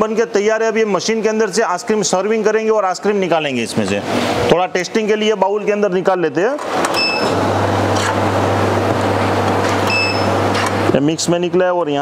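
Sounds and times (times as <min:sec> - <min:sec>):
ice cream machine humming: 0:00.1 - 0:12.0
short high beep: 0:07.0 - 0:07.3, 0:09.9 - 0:10.4.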